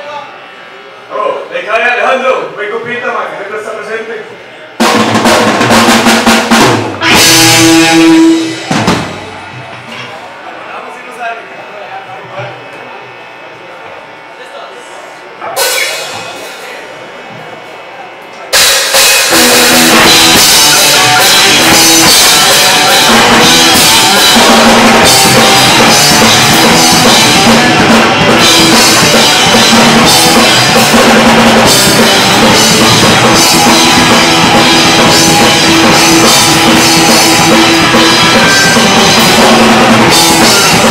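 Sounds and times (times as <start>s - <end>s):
live punk band playing: 1.1s - 13.5s, 15.4s - 17.7s, 18.5s - 40.9s.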